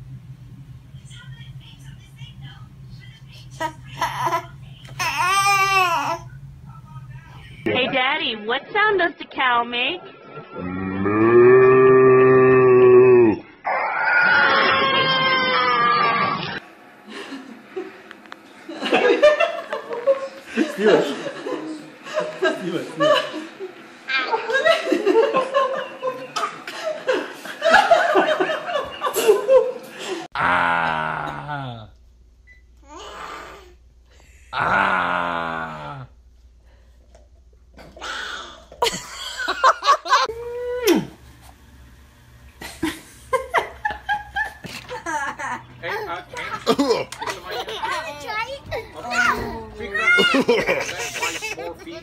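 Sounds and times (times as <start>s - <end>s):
baby crying: 4.0s - 6.3s, 13.7s - 16.4s, 32.8s - 33.7s
man imitating cow moo: 10.6s - 13.4s, 30.4s - 31.9s, 34.5s - 36.1s
people laughing: 18.7s - 30.3s, 38.8s - 41.1s, 42.6s - 49.3s, 49.9s - 52.0s.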